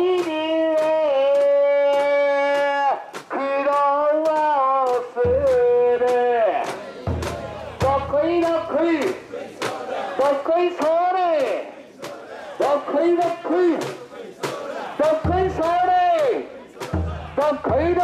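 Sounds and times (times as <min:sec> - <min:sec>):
crowd chanting rhythmic shouts: 0:00.0 - 0:18.0
sharp rhythmic clicks: 0:00.1 - 0:18.0.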